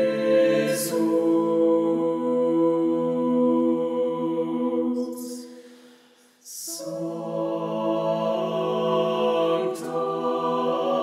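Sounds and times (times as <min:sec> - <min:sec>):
choir holding a sustained chord: 0:00.0 - 0:05.5, 0:06.5 - 0:11.0.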